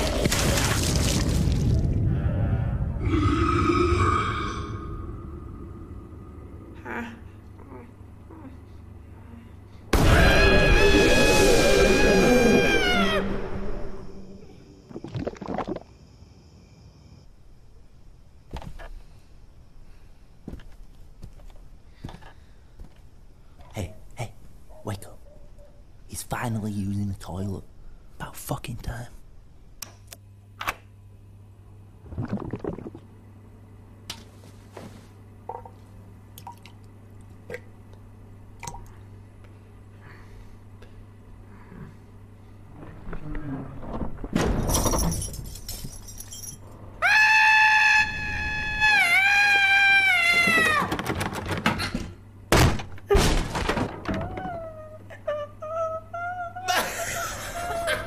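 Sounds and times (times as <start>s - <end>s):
faint low hum: 0.0s - 58.0s
creature scream: 2.9s - 5.9s, 10.0s - 14.3s, 47.0s - 50.9s
water dripping: 36.3s - 37.6s, 38.6s - 39.0s.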